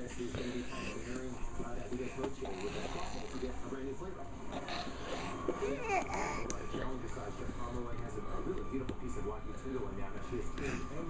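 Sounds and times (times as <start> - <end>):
faint background talking: 0.0 - 11.0.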